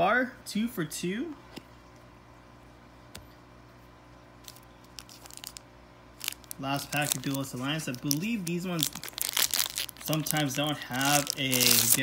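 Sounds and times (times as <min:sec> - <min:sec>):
foil wrapper crinkling: 0:04.4 - 0:05.6, 0:06.2 - 0:12.0.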